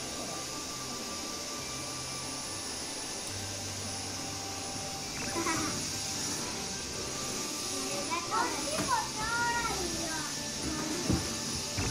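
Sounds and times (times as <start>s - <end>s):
soft background music: 0.0s - 11.9s
steady hiss: 0.0s - 11.9s.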